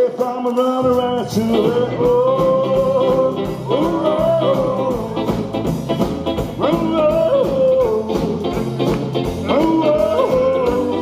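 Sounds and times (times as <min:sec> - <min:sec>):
rockabilly band playing: 0:00.0 - 0:11.0
gliding guitar melody line: 0:00.8 - 0:11.0.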